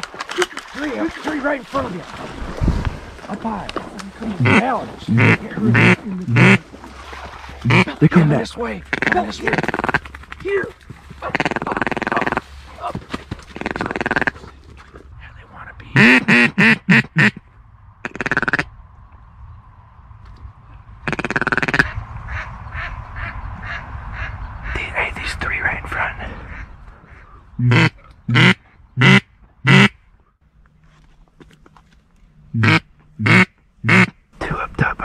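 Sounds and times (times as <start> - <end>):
duck quacking: 4.4 - 6.6, 7.6 - 8.0, 16.0 - 17.4, 18.0 - 18.7, 21.1 - 24.8, 26.4 - 30.0, 32.6 - 34.2.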